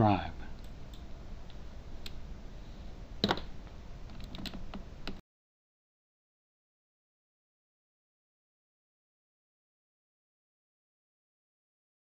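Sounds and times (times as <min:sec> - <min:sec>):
low room hum: 0:00.0 - 0:05.2
keyboard and mouse clicks: 0:04.1 - 0:05.2.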